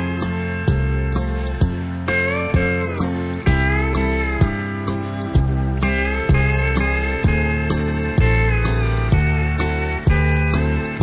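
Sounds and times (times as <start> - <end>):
country band backing: 0.0 - 11.0
plucked bass notes: 0.0 - 11.0
steel guitar sliding: 0.0 - 11.0.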